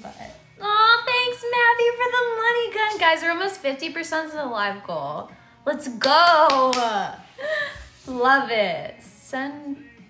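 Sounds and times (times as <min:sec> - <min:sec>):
sharp hand claps: 0:06.0 - 0:07.0.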